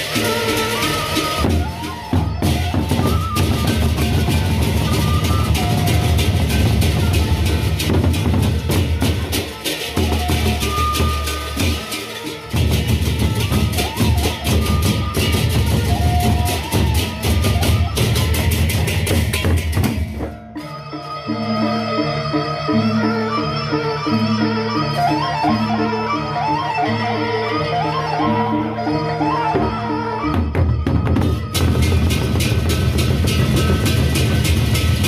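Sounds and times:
barrel drums beaten with sticks: 1.4s - 20.4s, 30.5s - 35.0s.

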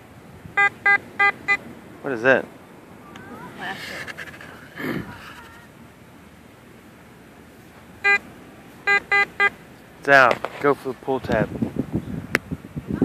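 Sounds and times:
metal detector beeps: 0.6s - 1.6s, 8.0s - 8.2s, 8.9s - 9.6s.

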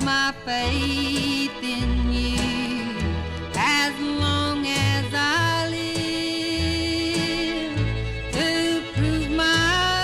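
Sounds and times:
guitar: 0.0s - 10.0s
plucked bass: 0.0s - 10.0s
woman singing: 0.0s - 10.0s.

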